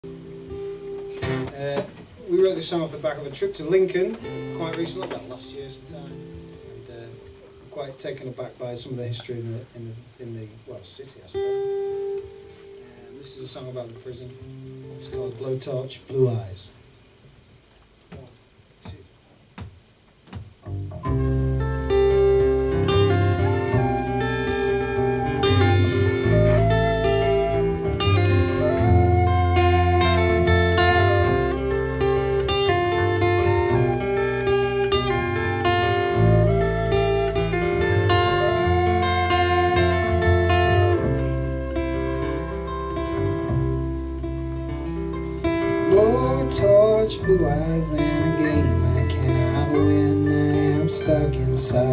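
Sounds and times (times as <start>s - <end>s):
strummed acoustic guitar: 0.1s - 2.1s, 20.6s - 51.9s
plucked double bass: 20.6s - 51.9s
held melody line: 20.7s - 51.9s.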